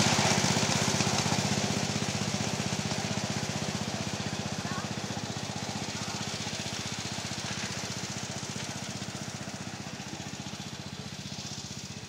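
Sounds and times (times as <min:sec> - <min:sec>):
miniature railway locomotive running: 0:00.0 - 0:12.0.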